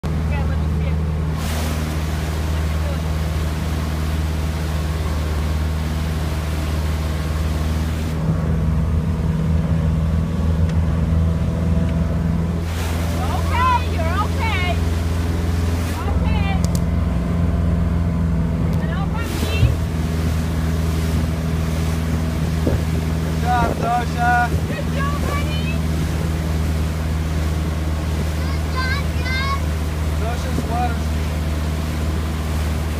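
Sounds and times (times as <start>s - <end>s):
motorboat engine drone: 0.0s - 32.9s
water noise: 0.0s - 32.9s
rushing wind: 18.3s - 32.9s.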